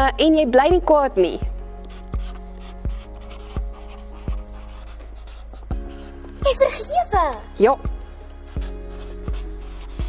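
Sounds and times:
soft background music: 0.0 - 10.0
marker writing on paper: 1.8 - 6.9, 8.0 - 10.0.

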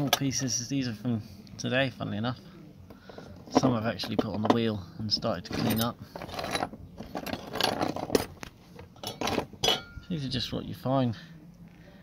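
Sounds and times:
metal scraping on wood: 3.0 - 9.9
metal pieces clinking and knocking: 5.5 - 10.0.

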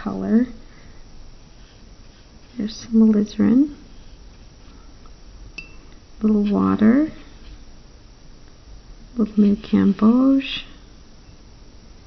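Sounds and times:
paintbrush tapping glass jar: 5.6 - 6.4.

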